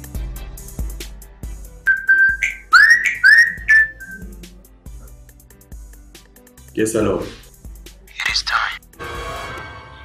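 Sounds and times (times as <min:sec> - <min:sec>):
background music with low beat: 0:00.0 - 0:09.0
phone ringtone: 0:01.9 - 0:04.3.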